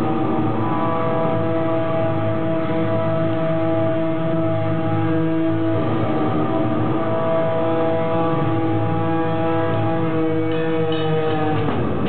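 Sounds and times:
distorted electric guitar chords: 0:00.0 - 0:12.0.

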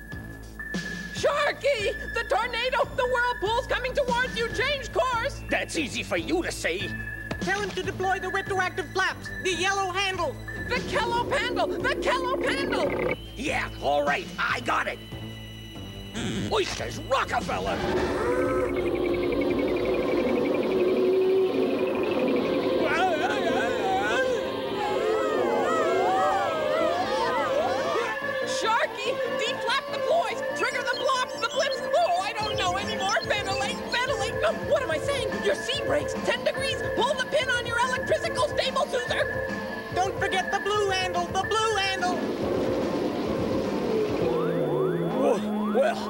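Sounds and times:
fast warbling high tone: 0:09.5 - 0:14.8, 0:16.2 - 0:46.0
sustained low synth notes: 0:17.6 - 0:31.2, 0:42.1 - 0:46.0
steady rushing noise: 0:42.0 - 0:44.4.

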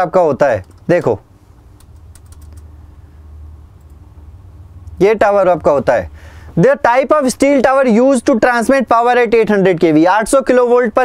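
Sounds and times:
faint low hum: 0:00.0 - 0:11.0
computer keyboard clicks: 0:00.6 - 0:01.2, 0:01.8 - 0:02.7.

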